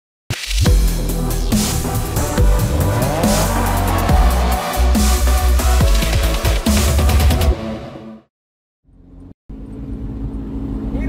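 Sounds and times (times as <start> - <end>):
engine drone and road noise: 0.8 - 7.2, 8.9 - 11.0.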